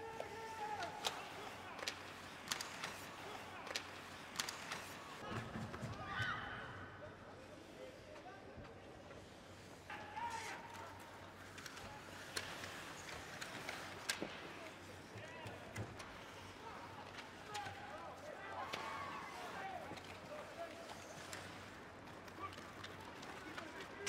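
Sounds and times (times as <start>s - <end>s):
hockey sticks and puck clacking: 0.0s - 5.9s, 9.2s - 24.0s
arena hubbub: 0.0s - 7.0s.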